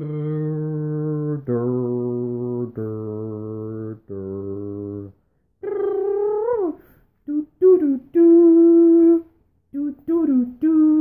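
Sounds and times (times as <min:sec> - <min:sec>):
man humming: 0:00.0 - 0:11.0.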